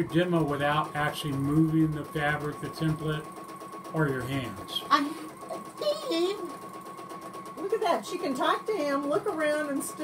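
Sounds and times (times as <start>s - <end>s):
sewing machine stitching: 0.0s - 10.0s.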